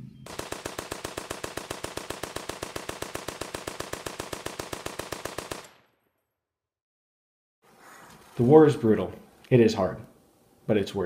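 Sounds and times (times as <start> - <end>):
rapid automatic gunfire: 0.3 - 5.8.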